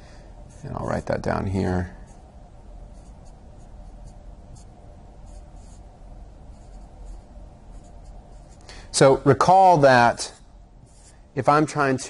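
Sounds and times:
marker writing on whiteboard: 0:03.0 - 0:05.9, 0:06.5 - 0:08.6, 0:10.9 - 0:11.2.

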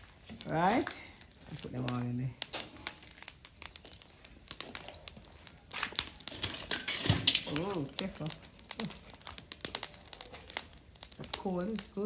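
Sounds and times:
charcoal fire crackling: 0:00.0 - 0:12.0.

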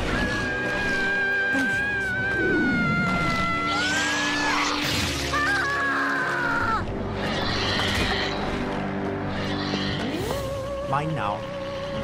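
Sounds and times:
dramatic orchestral film score: 0:00.0 - 0:12.0.

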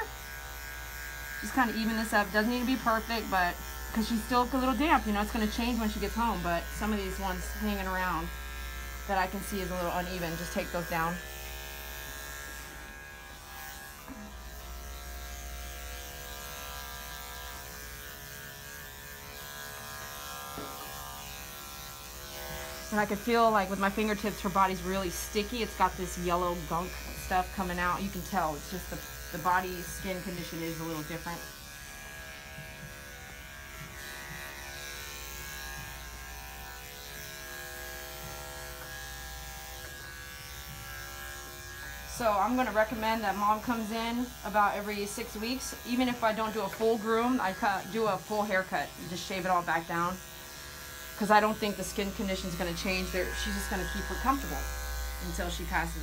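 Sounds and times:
electric dog clipper humming: 0:00.0 - 0:56.0.

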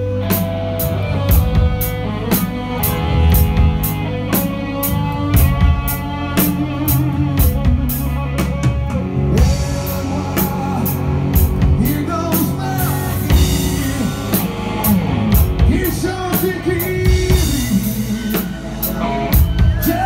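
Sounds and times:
drums keeping steady beat: 0:00.0 - 0:20.0
live rock band playing: 0:00.0 - 0:20.0.

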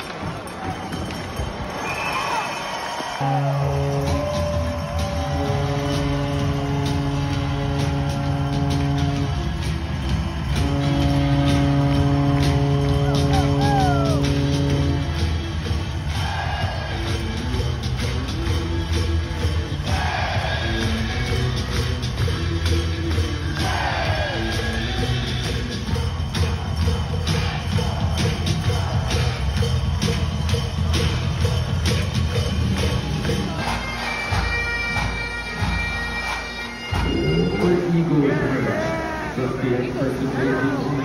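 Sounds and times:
crowd cheering: 0:00.0 - 0:41.0
goal horn blasts: 0:03.2 - 0:15.4
song with steady beat: 0:03.7 - 0:38.6.

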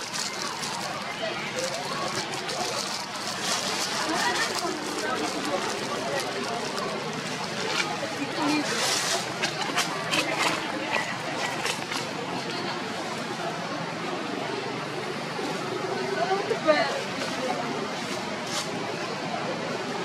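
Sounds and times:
clicks and rustles: 0:00.0 - 0:12.1
people talking: 0:00.0 - 0:20.0.

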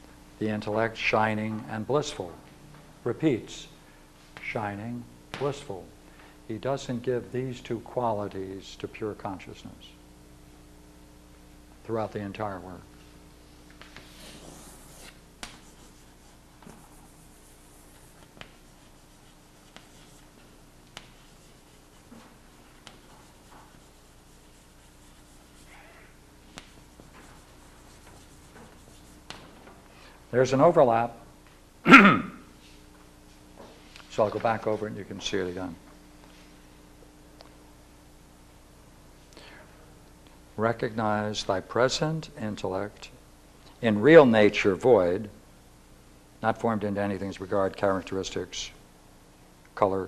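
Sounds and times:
steady low hum: 0:00.0 - 0:50.0
chalk scratching on blackboard: 0:13.8 - 0:20.4, 0:21.0 - 0:25.8, 0:26.6 - 0:29.3
chalk tapping on board: 0:16.6 - 0:20.2, 0:20.9 - 0:25.6.

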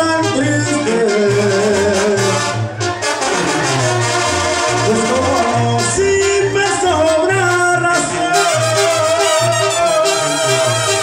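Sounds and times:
brass band playing: 0:00.0 - 0:11.0.

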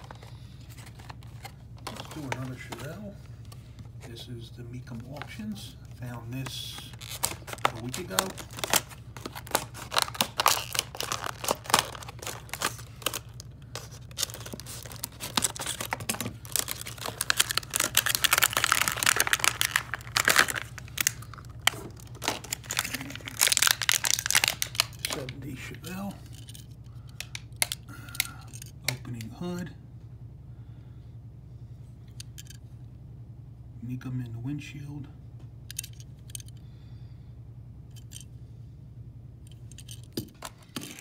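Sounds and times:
steady low hum: 0:00.0 - 0:41.0
plastic packaging crinkling and tearing: 0:06.6 - 0:25.6.

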